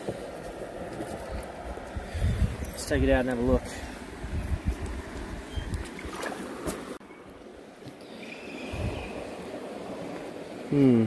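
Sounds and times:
creek water running over stones: 0.0s - 7.0s.

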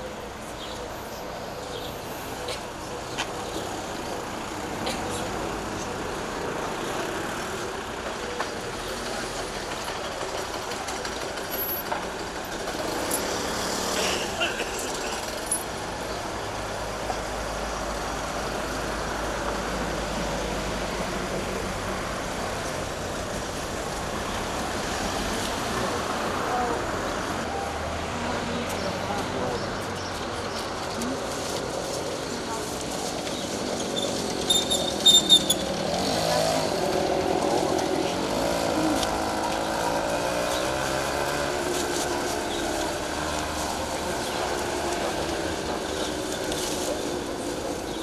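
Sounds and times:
street traffic: 0.0s - 48.0s.

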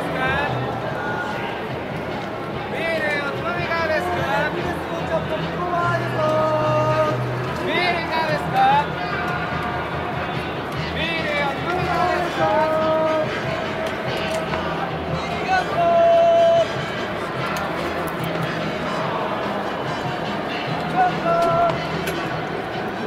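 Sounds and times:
crowd voices: 0.0s - 23.0s
music: 0.0s - 23.0s.

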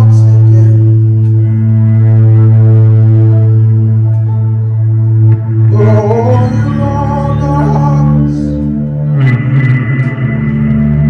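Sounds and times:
electric bass drone: 0.0s - 11.0s.

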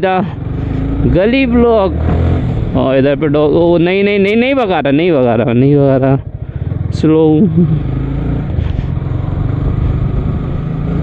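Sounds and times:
motorcycle engine running: 0.0s - 11.0s.

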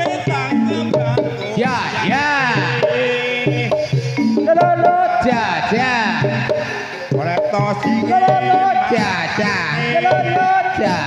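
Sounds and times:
tuned percussion melody: 0.0s - 11.0s
voice singing sliding phrases: 0.0s - 11.0s.

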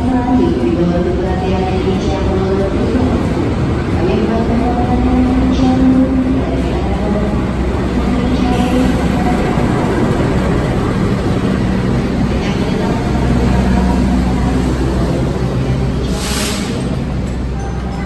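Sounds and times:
locomotive engine drone: 0.0s - 18.0s
train carriages rolling past: 0.0s - 18.0s.

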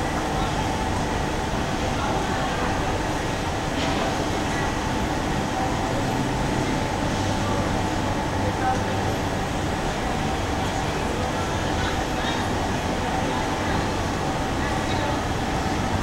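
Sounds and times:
indistinct chatter of people: 0.0s - 16.0s
traffic noise: 0.0s - 16.0s.

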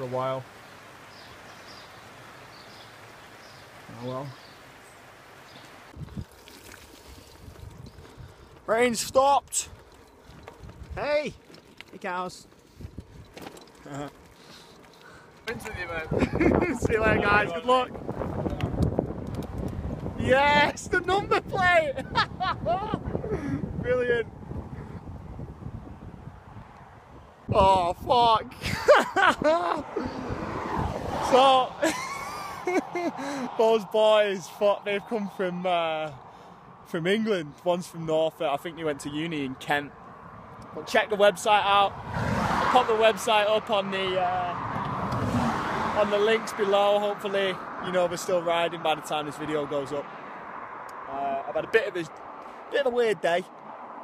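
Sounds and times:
steady rain falling: 0.0s - 7.3s
person laughing: 15.6s - 17.0s, 21.2s - 23.7s, 28.5s - 30.4s, 31.4s - 33.5s
car passing: 29.5s - 37.3s, 38.7s - 54.0s.

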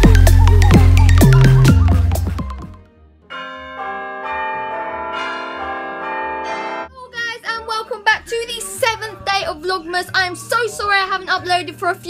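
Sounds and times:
bell-like chime chord: 3.3s - 6.9s
girl talking: 6.9s - 12.0s.

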